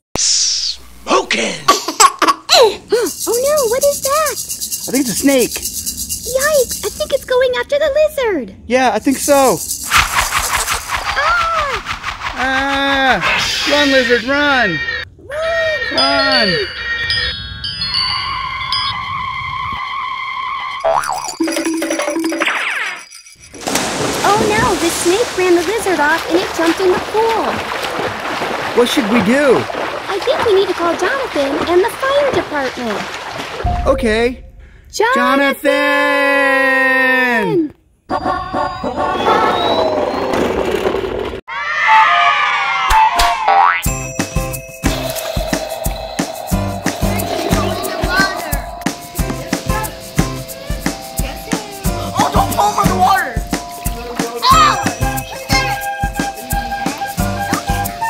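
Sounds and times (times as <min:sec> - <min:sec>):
upbeat children's music with drums: 0:03.0 - 0:07.3, 0:21.2 - 0:23.1, 0:43.0 - 0:58.0
rising boing: 0:20.8 - 0:22.7, 0:41.9 - 0:43.9
low rumble: 0:33.6 - 0:35.1, 0:45.8 - 0:49.9
sweeping whoosh: 0:45.0 - 0:50.2.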